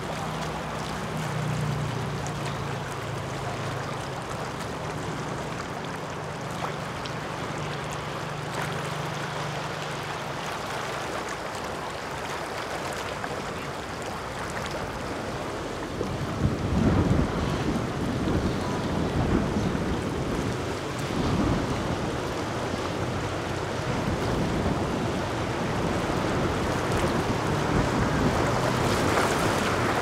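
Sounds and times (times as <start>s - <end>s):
boat engine rumble: 0.0s - 30.0s
rushing water of wake: 0.0s - 30.0s
wind buffeting microphone: 14.8s - 30.0s.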